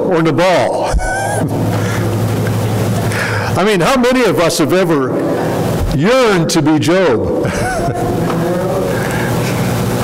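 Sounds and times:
crowd laughing: 0:00.8 - 0:02.8, 0:07.4 - 0:09.3.

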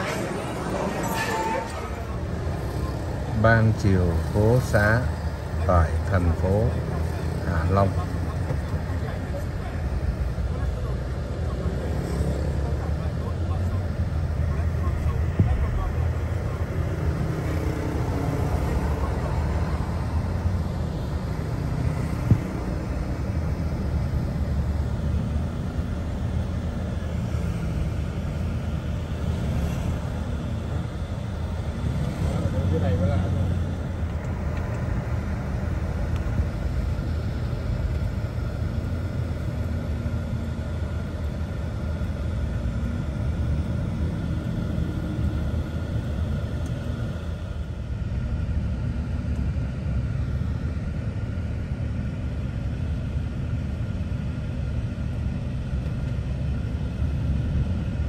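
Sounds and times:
car driving low rumble: 0:00.0 - 0:58.0
passing traffic: 0:00.0 - 0:58.0.

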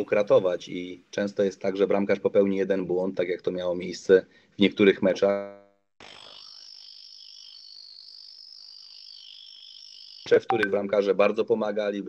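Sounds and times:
faint high-pitched buzz: 0:06.0 - 0:11.4.

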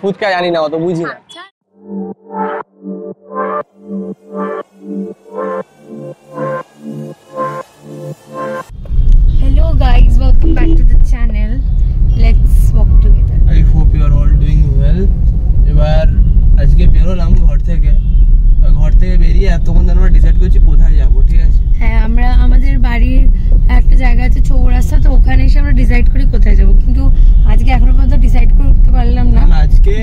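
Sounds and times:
car rumble inside cabin: 0:08.8 - 0:30.0.

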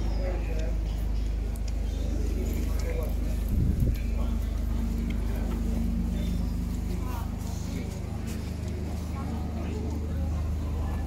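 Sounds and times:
faint voices of passers-by: 0:00.0 - 0:11.0
steady low motor hum: 0:00.0 - 0:11.0.

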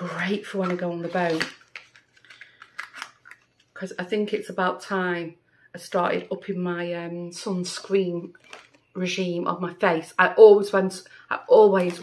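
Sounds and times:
person speaking: 0:00.0 - 0:01.6, 0:09.0 - 0:12.0.

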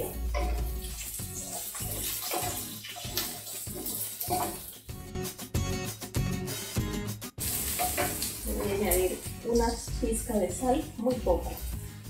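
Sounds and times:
vegetables sizzling in oil: 0:00.0 - 0:04.9, 0:07.4 - 0:10.4
background music: 0:00.0 - 0:12.0.

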